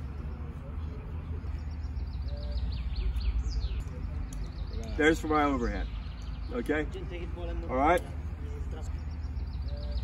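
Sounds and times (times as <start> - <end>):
songbird singing: 0.0 - 10.0.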